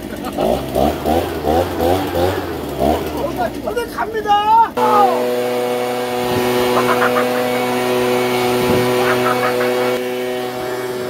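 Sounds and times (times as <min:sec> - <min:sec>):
person laughing: 0:00.0 - 0:00.8, 0:06.6 - 0:07.8, 0:08.6 - 0:10.0
leaf blower engine running: 0:00.0 - 0:11.0.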